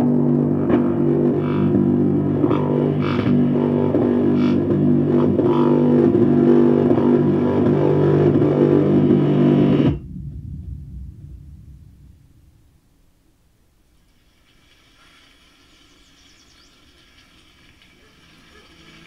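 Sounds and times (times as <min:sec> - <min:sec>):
distorted guitar and bass chords: 0:00.0 - 0:13.2
low rumble: 0:00.0 - 0:14.1.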